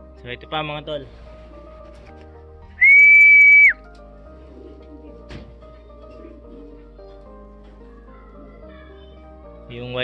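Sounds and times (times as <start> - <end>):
person whistling high note: 2.8 - 3.8.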